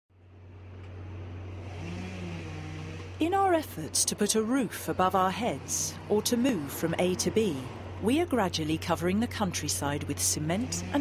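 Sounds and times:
low engine rumble: 0.2 - 11.0.

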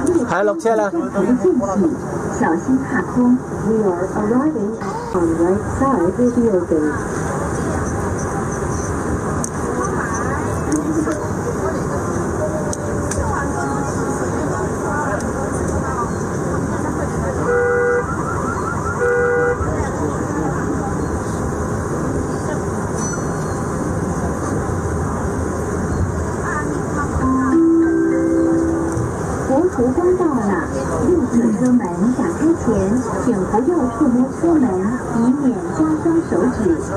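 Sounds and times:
traffic noise: 0.0 - 36.9.

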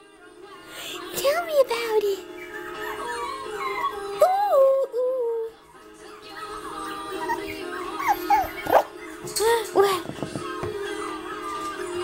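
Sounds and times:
background music: 0.0 - 12.0
puppy whimpering and yipping: 2.6 - 4.2, 7.1 - 9.0.

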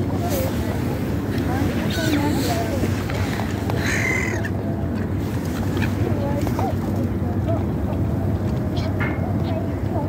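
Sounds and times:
gulls calling: 1.2 - 7.0.

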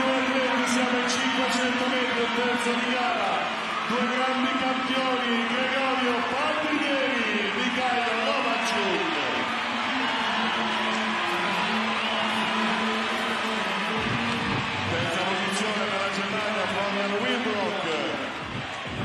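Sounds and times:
crowd cheering: 0.0 - 19.0.

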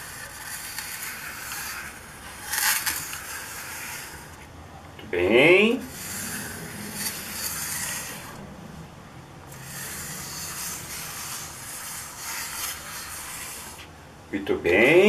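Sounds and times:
cap scraping across paper: 0.0 - 4.5, 5.7 - 8.4, 9.5 - 14.0.

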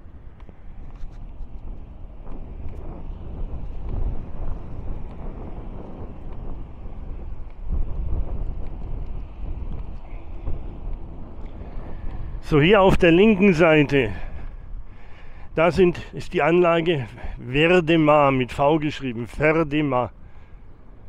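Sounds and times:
car engine and road noise: 0.0 - 21.0
wind buffeting microphone: 0.0 - 21.0.

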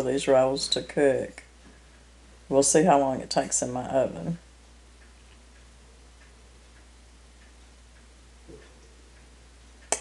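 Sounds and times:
low steady hum: 0.0 - 10.0
faint regular ticking: 1.4 - 10.0.

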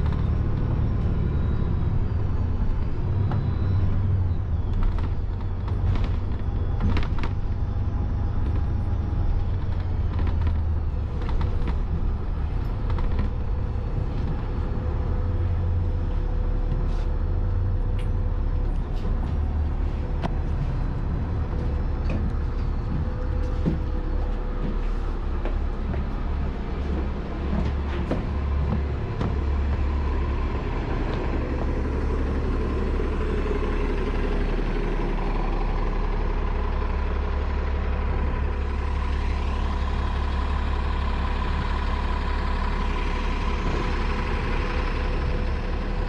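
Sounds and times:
bus engines rumbling: 0.0 - 46.0.

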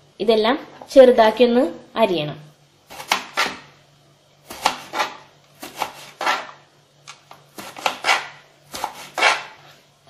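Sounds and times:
knife chopping on plastic board: 2.9 - 3.7, 4.5 - 9.6.

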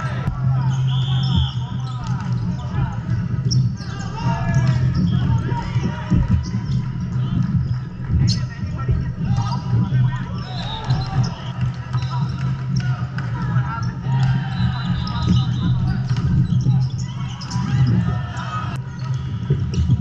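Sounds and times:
players calling out: 0.0 - 20.0
sneakers squeaking: 0.0 - 20.0
volleyballs struck and bouncing: 4.5 - 18.0.

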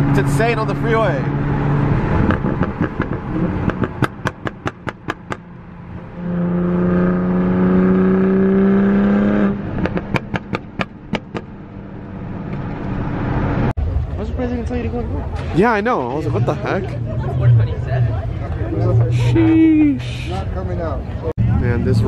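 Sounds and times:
car engine pulling: 0.0 - 20.4
sharp exhaust pops: 2.2 - 5.5, 9.8 - 11.6.

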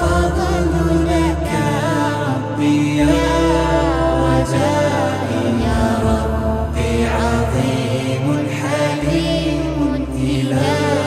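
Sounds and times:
chanted layered vocals: 0.0 - 11.0.

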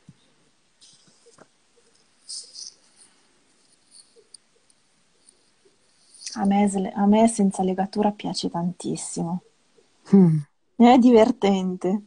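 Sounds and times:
pen nib scratching on paper: 0.8 - 6.7.

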